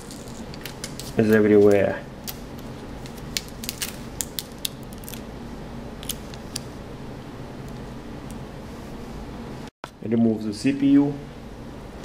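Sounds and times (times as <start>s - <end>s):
tape peeling crackles: 0.0s - 5.3s
faint steady hum: 0.0s - 12.0s.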